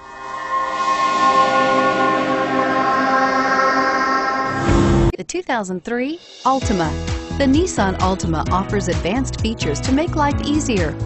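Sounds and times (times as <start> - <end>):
bell-like chiming intro music: 0.0 - 5.1.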